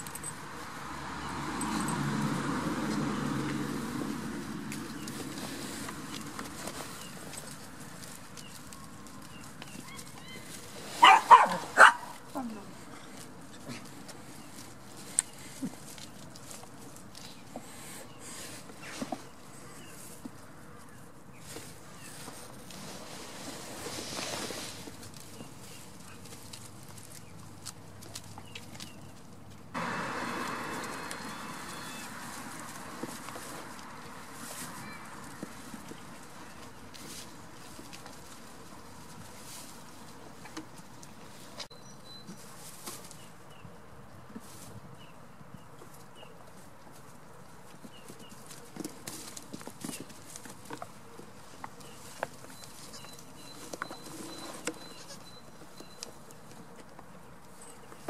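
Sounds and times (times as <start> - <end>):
goat hooves tapping on straw: 0.0 - 12.3, 13.1 - 43.6, 45.6 - 58.0.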